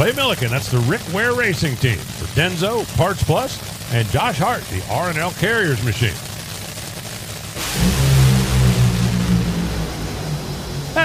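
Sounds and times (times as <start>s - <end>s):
dragster engine at full throttle: 0.0s - 11.0s
loud hiss: 3.5s - 11.0s.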